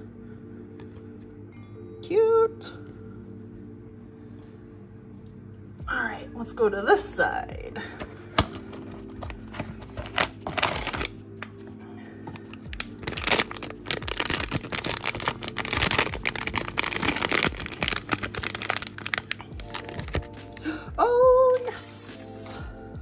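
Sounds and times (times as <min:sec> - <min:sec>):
light background music: 0:00.0 - 0:23.0
plastic bag crinkling and tearing: 0:09.1 - 0:11.5, 0:12.4 - 0:20.6.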